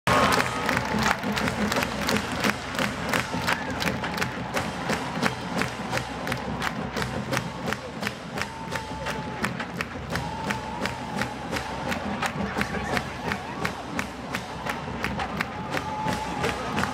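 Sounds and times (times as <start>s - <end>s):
stadium crowd cheering: 0.0s - 16.9s
marching drumline beat: 0.1s - 16.9s.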